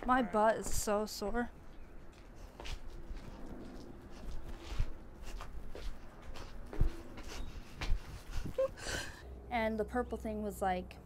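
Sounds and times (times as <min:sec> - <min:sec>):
feet shuffling on concrete: 0:00.0 - 0:08.6.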